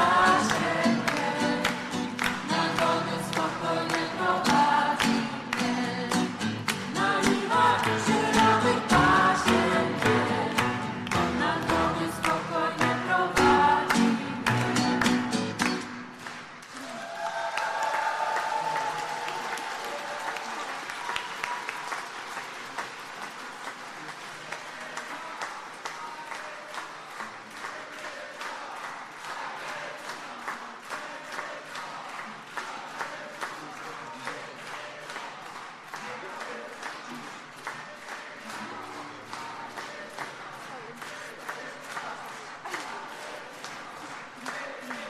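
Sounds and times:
congregation applauding: 0.0 - 45.0.

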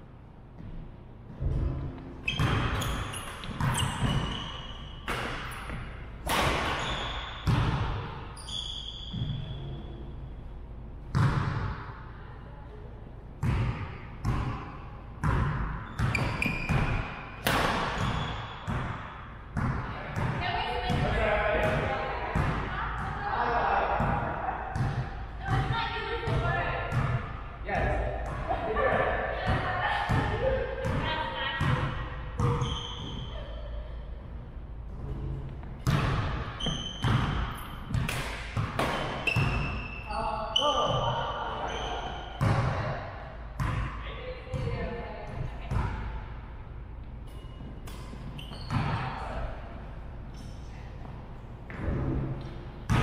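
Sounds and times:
voices talking in a gymnasium: 0.0 - 53.0
shoes squeaking on wooden floor: 2.2 - 5.0, 47.3 - 49.0
racket hitting shuttlecock: 5.0 - 6.8, 15.6 - 18.8, 35.8 - 39.7.

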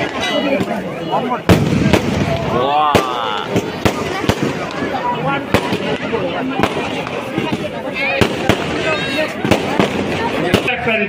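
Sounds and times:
crowd voices: 0.0 - 11.0
fireworks bangs: 0.0 - 11.0.

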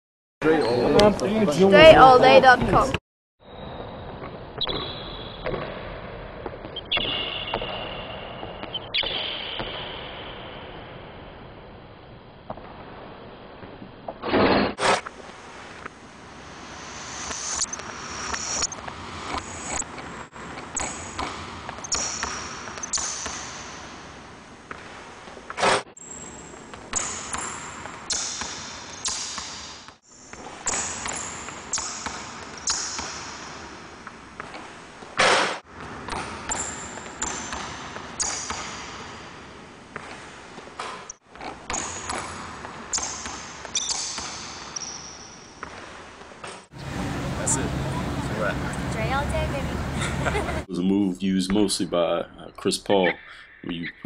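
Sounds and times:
sneakers squeaking: 4.6 - 5.7, 6.6 - 10.1, 17.1 - 47.2.

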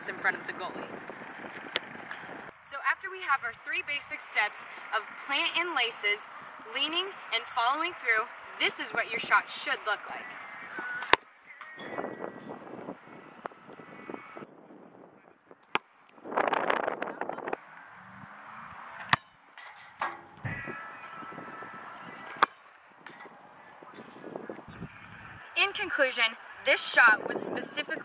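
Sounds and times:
outdoor field background noise: 0.0 - 28.0.

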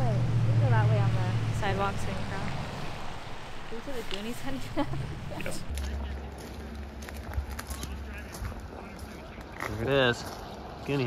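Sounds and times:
footsteps crunching on gravel: 3.8 - 11.0.

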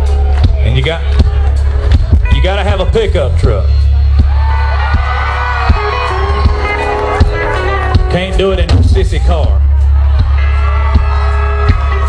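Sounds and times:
guitar chords: 0.0 - 12.0
heavy bass: 0.0 - 12.0.

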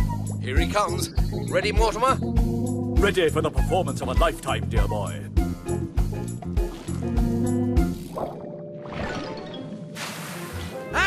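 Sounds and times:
cartoon background music: 0.0 - 11.0.

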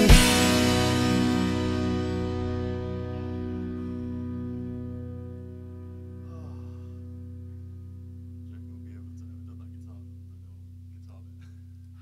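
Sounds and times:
electric guitar chord ringing: 0.0 - 12.0
faint talking: 6.2 - 7.0, 8.4 - 11.6.

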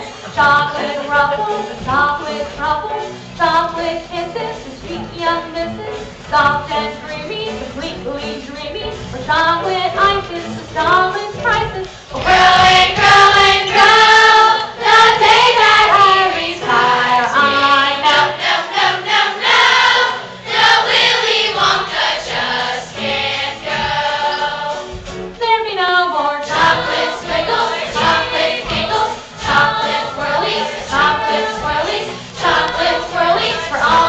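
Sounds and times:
children singing in chorus: 12.1 - 24.8, 26.5 - 34.0.

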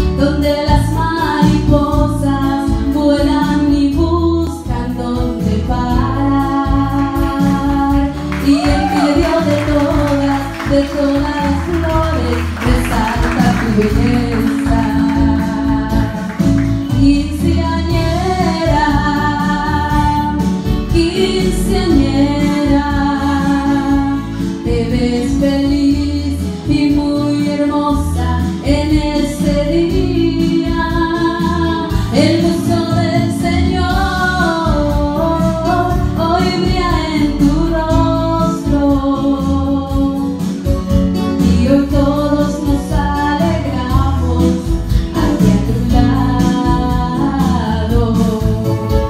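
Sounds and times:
girl singing into a microphone: 0.0 - 40.8, 41.4 - 49.0
musical accompaniment: 0.0 - 49.0.

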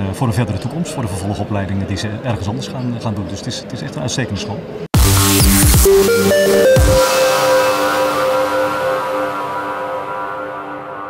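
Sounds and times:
held synthesizer chord: 5.0 - 11.0.

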